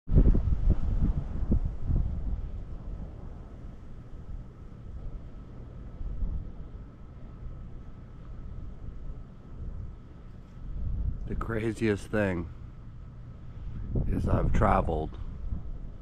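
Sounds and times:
wind buffeting microphone: 0.1 - 16.0.

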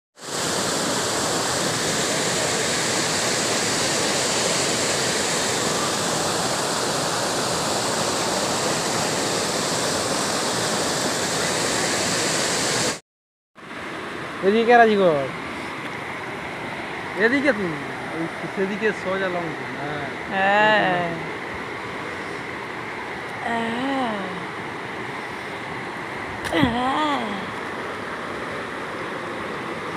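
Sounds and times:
floodwater rushing: 0.2 - 13.0, 13.6 - 29.9.

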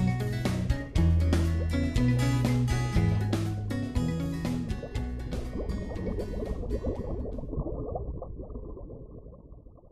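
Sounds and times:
water bubbling: 4.4 - 9.9.

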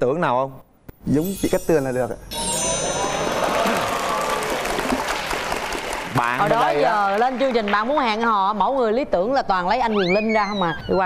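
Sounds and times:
studio audience applauding: 2.4 - 8.4.

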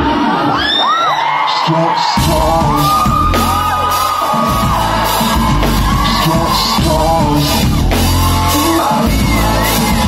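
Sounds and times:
crowd shouting and singing along: 0.0 - 10.0
live pop song: 0.0 - 10.0.

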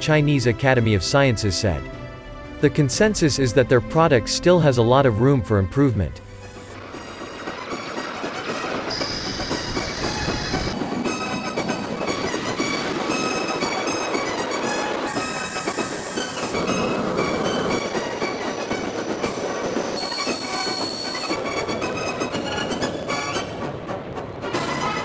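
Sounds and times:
high-pitched turbine whine: 6.4 - 23.6
jet engines roaring: 6.5 - 25.0.

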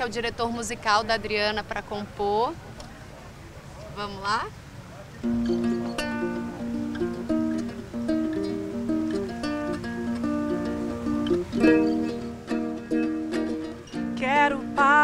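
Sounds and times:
cavaquinho picked melody: 5.1 - 15.0
cavaquinho strummed chords: 5.2 - 15.0.

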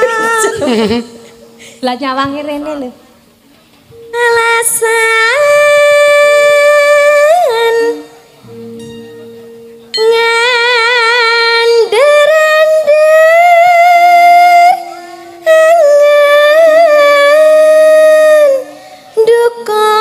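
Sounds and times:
woman singing long notes: 0.0 - 2.9, 3.9 - 9.0, 10.0 - 20.0
held instrument notes: 0.0 - 20.0.

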